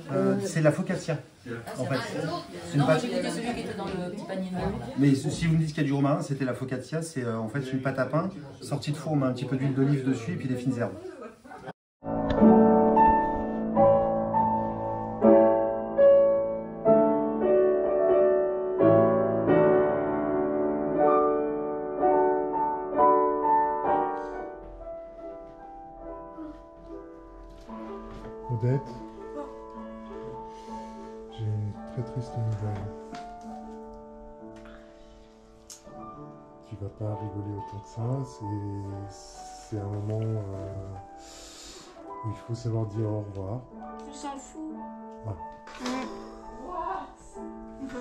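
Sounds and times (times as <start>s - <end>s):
soft background music: 1.7s - 10.9s, 12.1s - 48.0s
piano chords: 12.0s - 48.0s.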